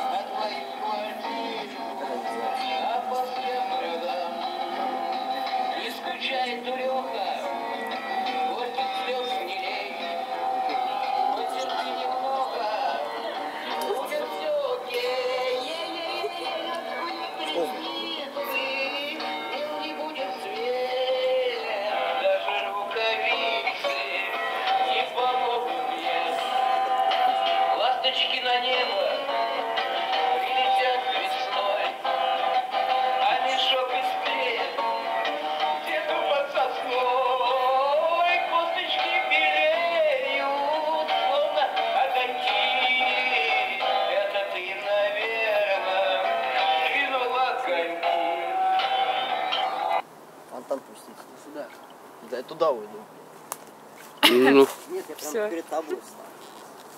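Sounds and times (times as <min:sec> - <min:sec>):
chanson song with vocals: 0:00.0 - 0:50.0.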